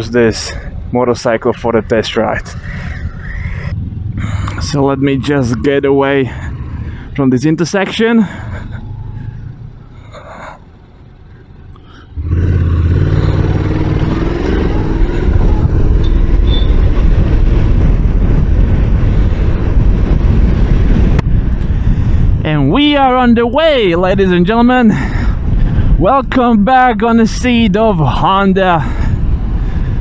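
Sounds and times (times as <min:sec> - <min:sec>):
wind rush on microphone: 0:00.0 - 0:07.2, 0:12.1 - 0:30.0
motorcycle engine accelerating: 0:02.6 - 0:21.6.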